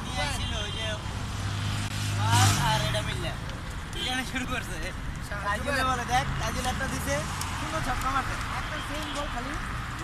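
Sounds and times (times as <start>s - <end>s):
voices talking: 0.0s - 1.3s, 2.1s - 10.0s
vehicle engine passing: 1.0s - 3.8s.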